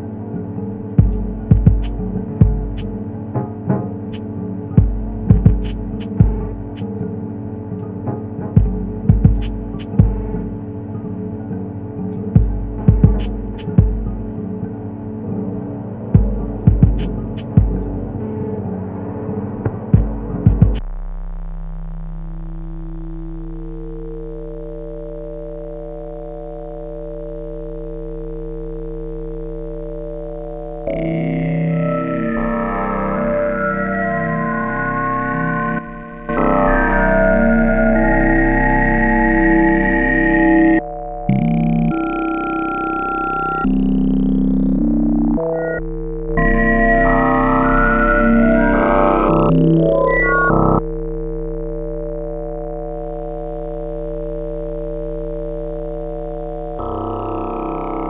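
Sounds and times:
electronic humming drone: 0.0s - 58.0s
sharp low thumps: 0.8s - 7.0s, 8.1s - 10.8s, 12.2s - 14.6s, 16.1s - 18.3s, 19.5s - 26.2s.

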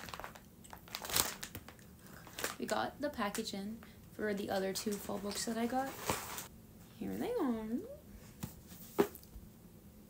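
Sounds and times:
packaging crinkling: 0.0s - 3.4s.

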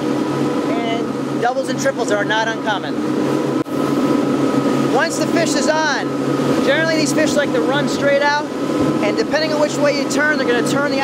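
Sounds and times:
boat engines droning: 0.0s - 11.0s
rush of wind and water: 0.0s - 11.0s.

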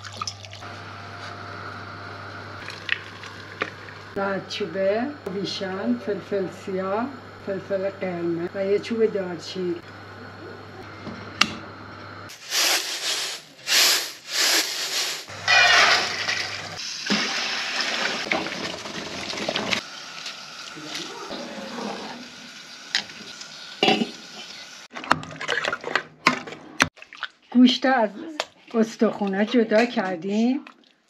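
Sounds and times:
pressure cooker hissing: 12.3s - 24.9s.

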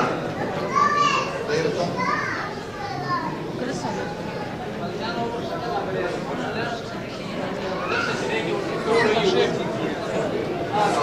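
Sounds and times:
children talking: 0.0s - 11.0s.

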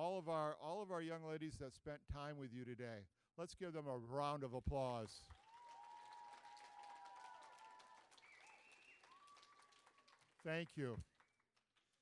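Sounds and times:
faint scattered applause: 5.2s - 12.0s.

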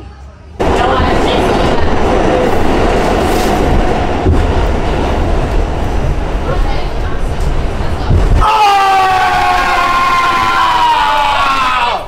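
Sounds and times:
subway wheels rumbling on track: 0.0s - 12.0s
train whine: 0.6s - 11.1s.

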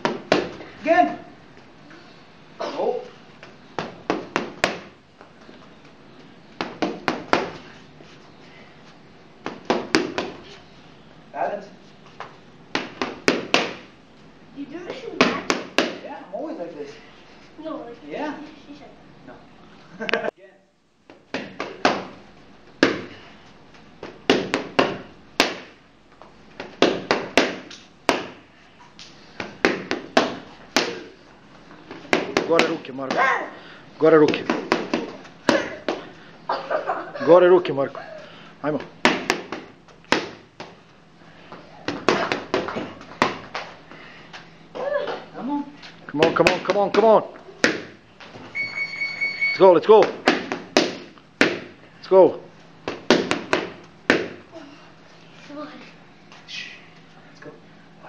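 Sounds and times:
boxing gloves smacking mitts: 0.0s - 0.7s, 3.4s - 5.0s, 6.6s - 7.7s, 9.4s - 10.5s, 12.2s - 13.9s, 14.9s - 16.1s, 21.1s - 22.2s, 22.8s - 23.2s, 24.0s - 25.8s, 26.6s - 28.4s, 29.4s - 31.2s, 31.8s - 33.4s, 34.2s - 36.1s, 38.8s - 40.8s, 41.8s - 43.8s, 46.2s - 48.4s, 49.9s - 51.8s, 52.8s - 54.4s.

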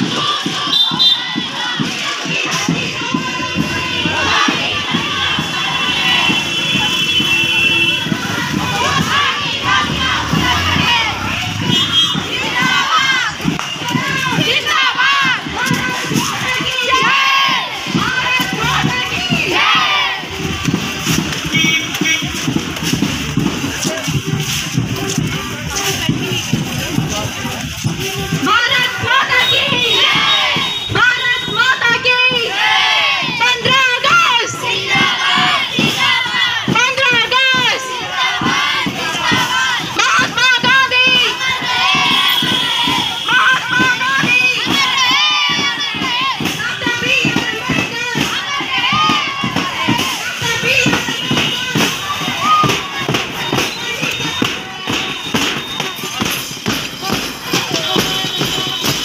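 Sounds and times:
children shouting slogans: 0.0s - 7.0s, 8.0s - 21.3s, 28.2s - 30.8s, 31.7s - 59.0s
children shouting in unison: 8.0s - 13.3s.

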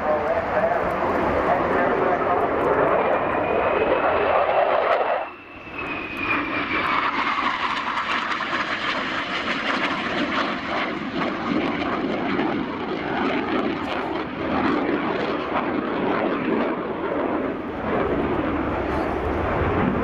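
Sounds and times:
jet engines roaring: 0.0s - 20.0s.

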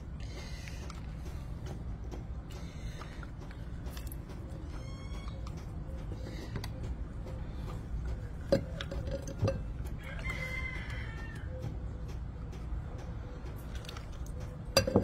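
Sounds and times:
rooster crowing: 9.8s - 11.7s.

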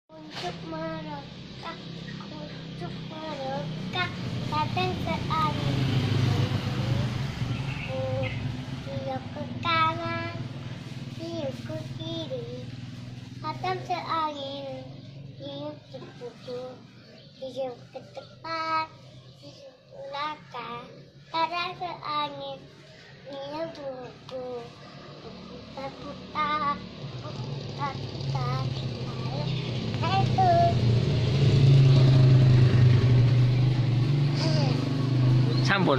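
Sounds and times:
child vocal sounds: 0.1s - 12.7s, 13.5s - 31.0s, 34.1s - 35.6s
motor vehicle rumble passing: 0.1s - 35.9s.

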